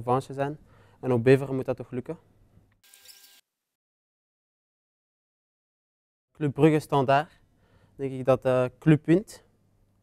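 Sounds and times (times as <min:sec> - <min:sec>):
faint hiss with light hum: 0:06.4 - 0:10.0.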